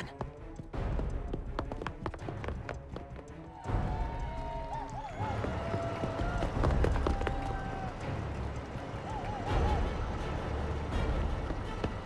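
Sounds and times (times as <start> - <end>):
running footsteps: 0.0 - 12.0.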